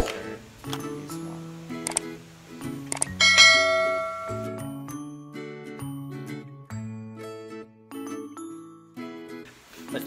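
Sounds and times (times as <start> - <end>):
background music with simple melody: 0.0 - 10.0
bright bell-like ding: 3.2 - 4.9.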